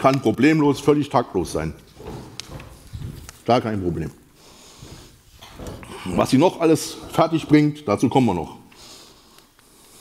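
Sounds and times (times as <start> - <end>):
man speaking: 0.0 - 1.9, 3.4 - 4.3, 5.8 - 8.7.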